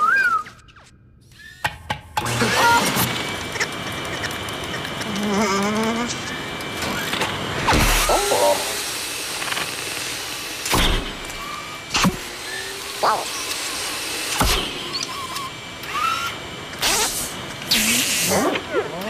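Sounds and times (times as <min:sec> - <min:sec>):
whirring servo motors: 0:02.2 - 0:19.0.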